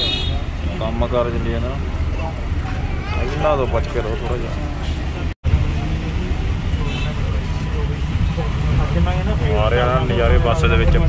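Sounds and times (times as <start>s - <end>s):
bus engine rumble: 0.0s - 11.0s
road noise: 0.0s - 11.0s.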